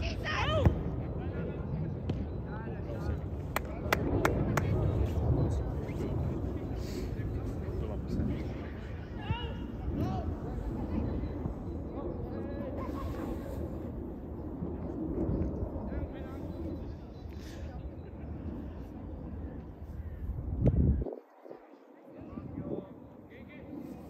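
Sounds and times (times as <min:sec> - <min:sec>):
steady low rumble: 0:00.0 - 0:24.0.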